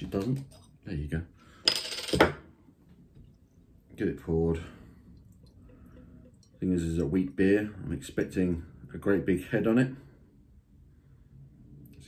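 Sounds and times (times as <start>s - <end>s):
glass bottle rattle and knock: 1.7s - 2.4s.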